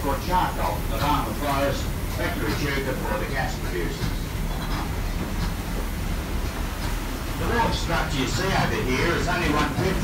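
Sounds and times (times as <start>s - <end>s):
paddle wheel churning water: 0.0s - 10.0s.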